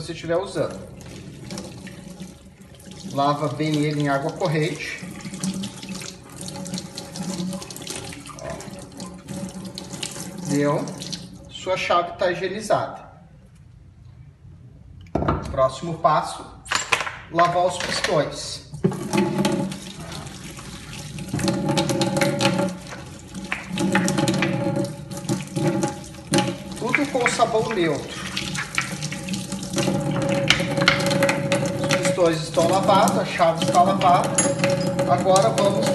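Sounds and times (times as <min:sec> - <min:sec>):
tap water splashing into sink: 0:00.7 - 0:11.4, 0:18.8 - 0:35.9.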